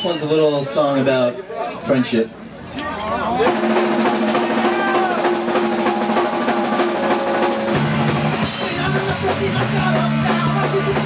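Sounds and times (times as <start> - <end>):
punk band playing live: 3.3 - 11.0.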